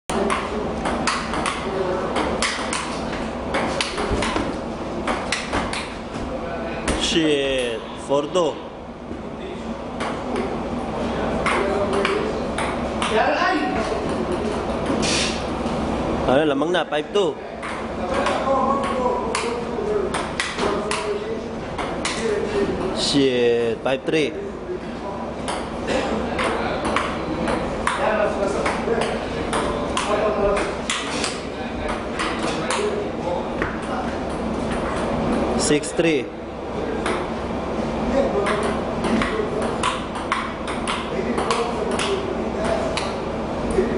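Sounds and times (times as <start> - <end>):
ping-pong ball clicking off paddles: 0.1 - 5.9, 11.4 - 13.2, 17.6 - 21.1, 26.4 - 32.9, 37.0 - 37.3, 38.4 - 42.2
table tennis ball clicking: 38.5 - 42.2.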